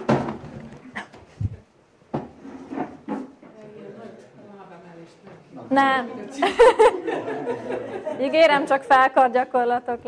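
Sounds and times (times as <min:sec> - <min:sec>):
wooden chairs knocking on tiled floor: 0:00.0 - 0:03.6.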